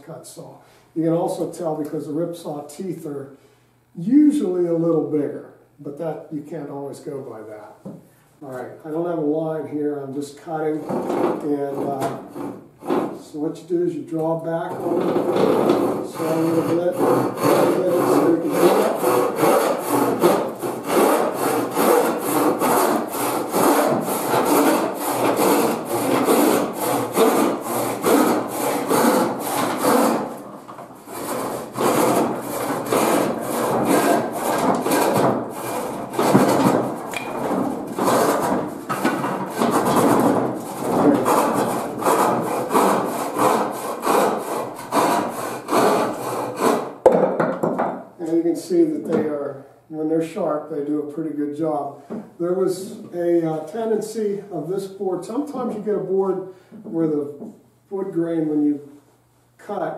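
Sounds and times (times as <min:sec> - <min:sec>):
hand saw ripping wood: 0:10.8 - 0:13.2, 0:14.7 - 0:47.0.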